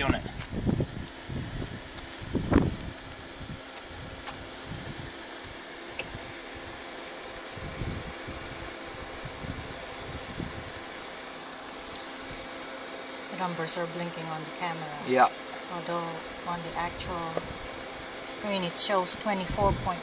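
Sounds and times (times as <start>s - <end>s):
wind buffeting microphone: 0.0s - 6.8s, 7.4s - 11.0s, 19.3s - 20.0s
inverter cooling fan whirring: 0.0s - 20.0s.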